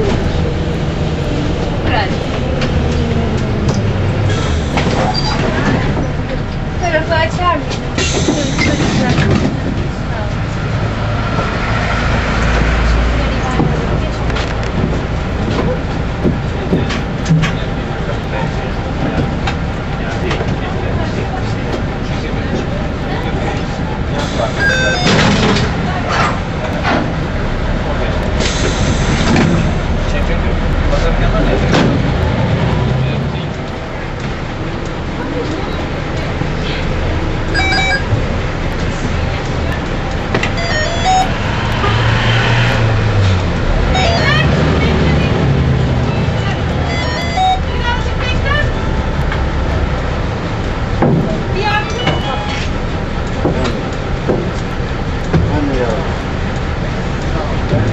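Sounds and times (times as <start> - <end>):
rattles and clicks of bus body: 0.0 - 11.6, 12.2 - 42.0, 43.2 - 57.9
bus engine and road rumble: 0.0 - 57.9
indistinct passengers' voices: 0.0 - 57.9.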